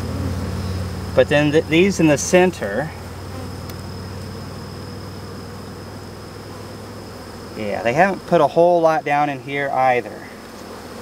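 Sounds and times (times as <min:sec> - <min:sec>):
honeybees buzzing: 0:00.0 - 0:11.0.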